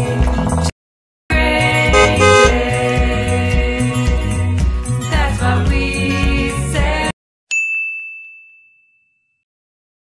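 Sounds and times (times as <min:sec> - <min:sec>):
music with beat and singing: 0:00.0 - 0:00.7, 0:01.3 - 0:07.2
bright ding: 0:07.5 - 0:09.4.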